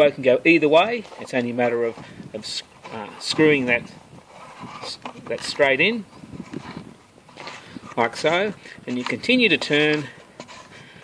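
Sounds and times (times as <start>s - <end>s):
plastic threads clicking and scraping: 6.5s - 10.7s.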